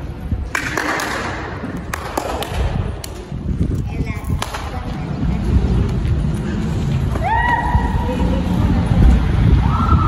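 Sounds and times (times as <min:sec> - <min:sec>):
low rumbling: 0:01.4 - 0:10.0.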